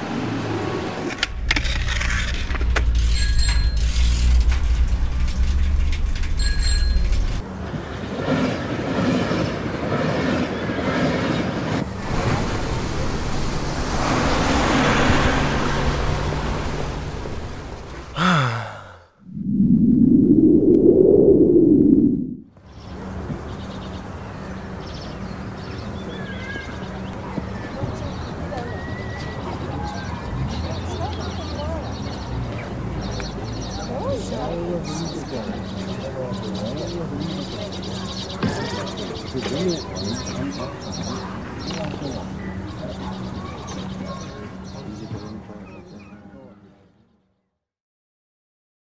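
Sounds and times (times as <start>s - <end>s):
loud low vehicle rumble: 0.0s - 8.0s, 11.8s - 22.4s
bell-like dings: 3.1s - 4.0s, 6.4s - 7.4s
rising and falling glide: 19.2s - 22.5s.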